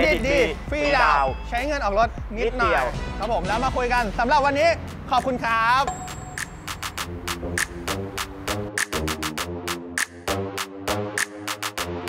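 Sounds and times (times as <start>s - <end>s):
quick percussion beat: 4.8s - 9.4s
held chord tones: 5.9s - 6.9s.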